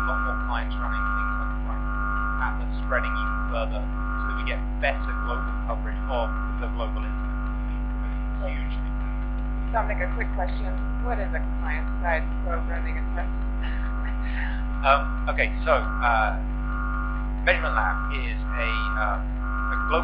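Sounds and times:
faint speech: 0.0s - 1.8s, 2.4s - 7.1s, 8.1s - 8.8s, 9.7s - 16.4s, 17.5s - 20.0s
electrical mains hum: 0.0s - 20.0s.

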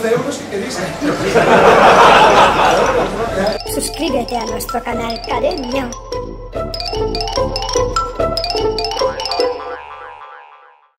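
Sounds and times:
jingle music: 2.3s - 9.8s.

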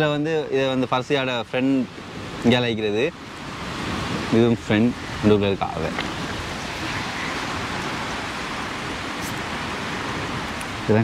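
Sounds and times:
steady rushing outdoor noise: 0.0s - 11.0s.

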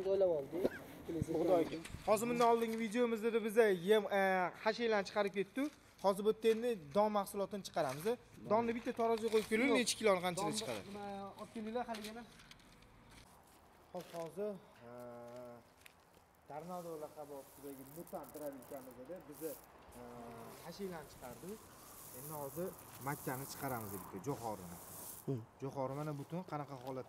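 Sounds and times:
people talking: 7.8s - 12.2s.

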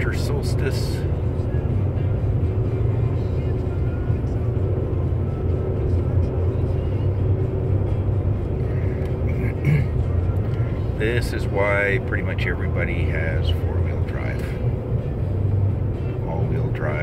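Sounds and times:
vehicle engine and tyres rumbling: 0.0s - 17.0s.

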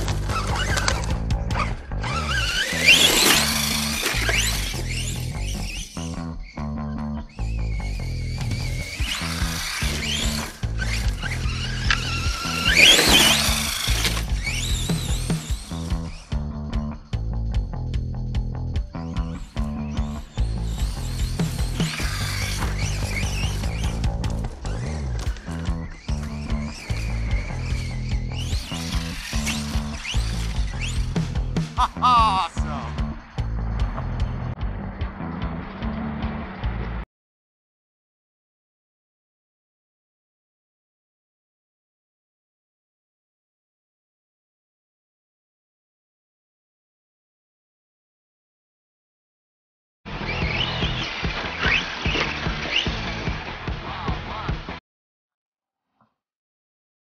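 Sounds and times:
toy truck motor whining: 0.0s - 6.6s, 7.3s - 16.5s, 19.3s - 31.6s, 50.1s - 53.4s
background music with steady beat: 13.5s - 37.0s.

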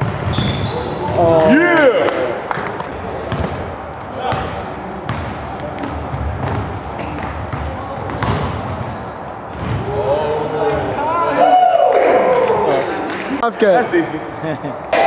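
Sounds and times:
shoe squeak: 0.2s - 1.2s, 2.8s - 4.3s, 8.0s - 10.5s
players' voices: 0.5s - 15.0s
basketball bouncing on hardwood floor: 5.1s - 8.9s, 9.5s - 9.9s.

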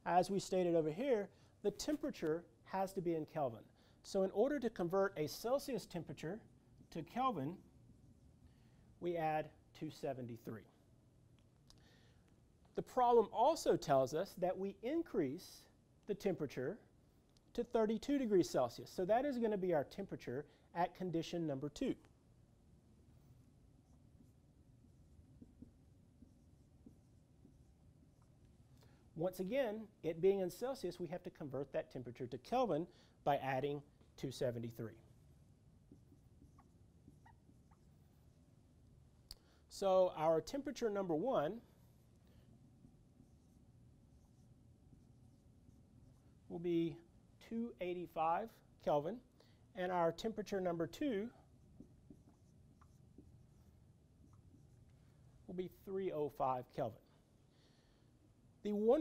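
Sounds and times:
low steady hum: 0.0s - 59.0s
low room rumble: 20.4s - 39.8s, 40.4s - 55.9s
marker writing on whiteboard: 22.9s - 28.9s, 33.8s - 39.0s, 40.4s - 48.6s, 50.1s - 55.9s.

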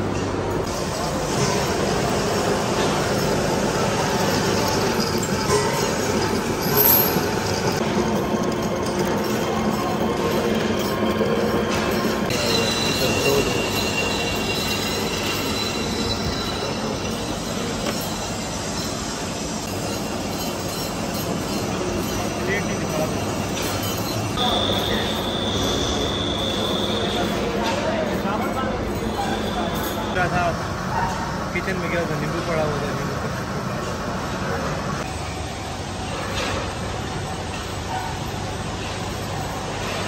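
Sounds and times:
lathe machining steel: 0.3s - 40.0s
high squeal of cutting tool: 1.4s - 30.3s.

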